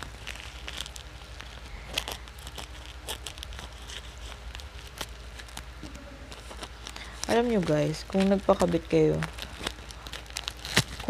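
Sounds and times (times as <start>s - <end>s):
plastic wrapper crinkling: 0.0s - 11.0s
scissors snipping plastic: 6.3s - 11.0s.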